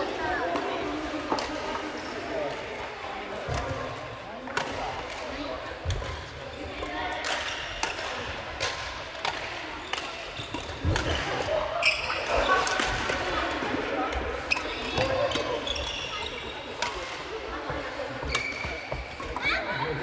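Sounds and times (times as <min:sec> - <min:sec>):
players' voices: 0:00.0 - 0:20.0
rackets striking shuttlecocks: 0:03.4 - 0:16.0, 0:16.7 - 0:19.4.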